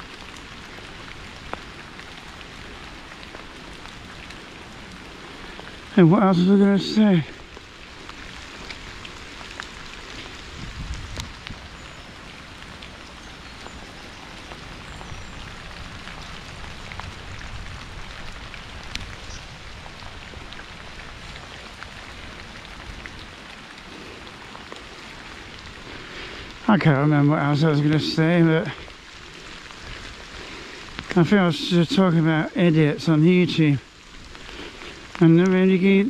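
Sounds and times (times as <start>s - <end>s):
low rumble of bicycle ride: 0.0s - 32.3s, 33.0s - 36.0s
rain hissing: 0.0s - 36.0s
raindrops ticking: 0.0s - 36.0s.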